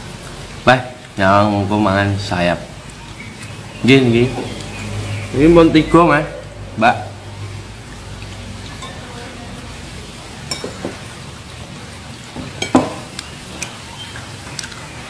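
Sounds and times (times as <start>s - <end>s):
utensils tapping a plate: 10.5s - 11.1s, 12.4s - 13.8s.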